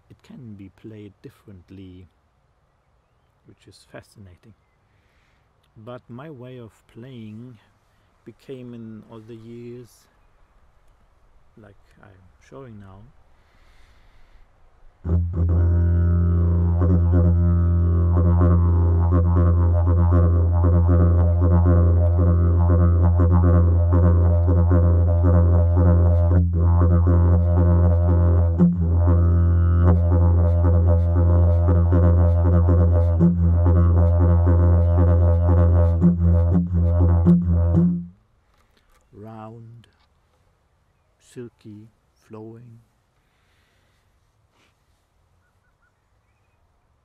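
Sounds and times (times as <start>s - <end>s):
didgeridoo drone: 15.0s - 38.2s.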